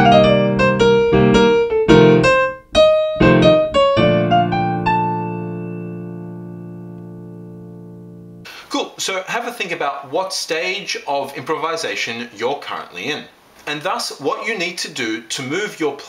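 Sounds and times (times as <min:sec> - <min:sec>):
jazz piano improvisation: 0:00.0 - 0:08.5.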